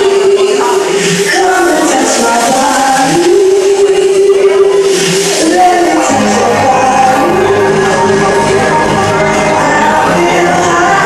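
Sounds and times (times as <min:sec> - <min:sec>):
amplified backing music: 0:00.0 - 0:11.0
bass line: 0:00.0 - 0:11.0
woman singing into a microphone: 0:00.0 - 0:11.0.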